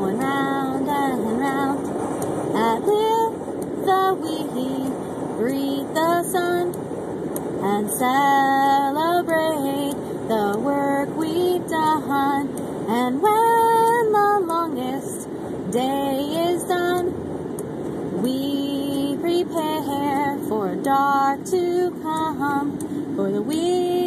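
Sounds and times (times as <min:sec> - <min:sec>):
woman singing unaccompanied: 0:00.0 - 0:01.9, 0:02.5 - 0:06.8, 0:07.6 - 0:17.2, 0:18.1 - 0:24.0
road noise inside a car: 0:00.0 - 0:24.0.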